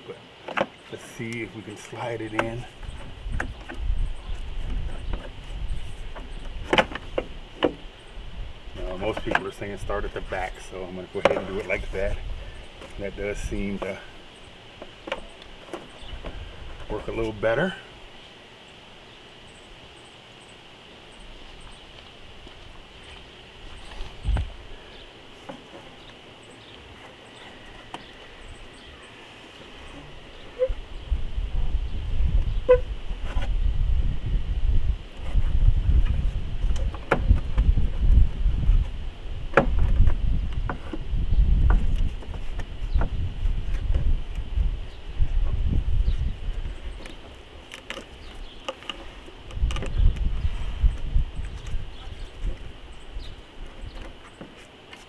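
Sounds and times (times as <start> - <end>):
wind buffeting microphone: 2.1 - 17.7, 21.3 - 25.1, 27.2 - 54.2.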